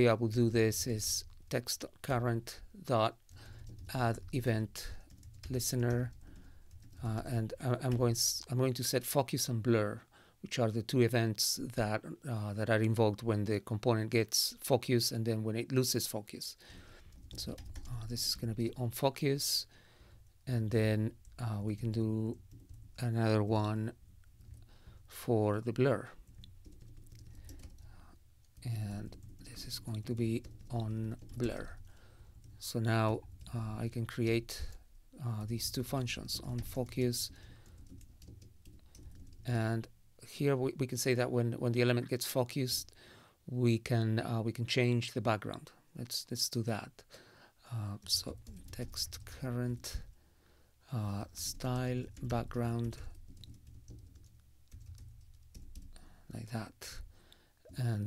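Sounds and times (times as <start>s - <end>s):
computer keyboard typing: 3.2s - 8.0s, 16.8s - 18.8s, 20.2s - 34.8s, 35.5s - 39.5s, 48.0s - 50.2s, 51.3s - 56.1s
low steady hum: 16.7s - 41.0s.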